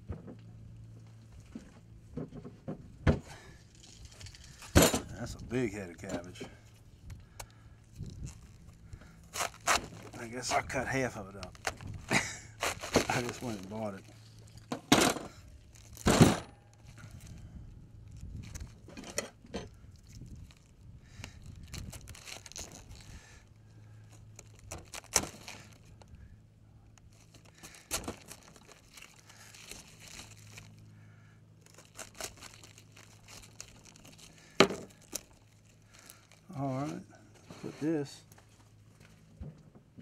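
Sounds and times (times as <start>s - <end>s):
knife crunching through cabbage: 7.4s - 14.7s, 18.1s - 18.9s, 19.9s - 23.3s, 24.0s - 26.0s, 27.0s - 30.9s, 31.6s - 37.0s.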